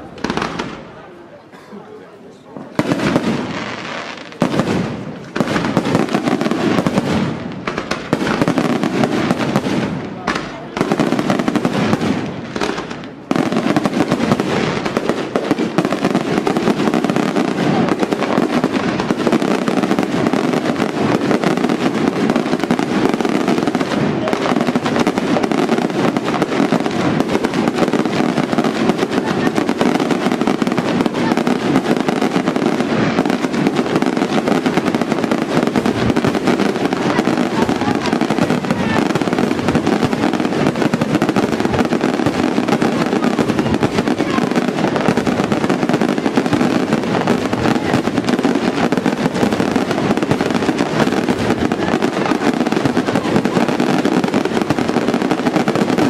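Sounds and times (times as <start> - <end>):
fireworks bursts and crackle: 0.0 - 56.0.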